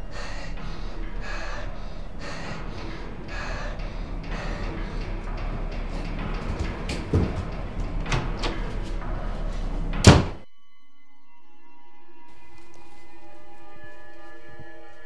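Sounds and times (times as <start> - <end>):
girl breathing: 0.0 - 6.8
thud: 9.9 - 10.4.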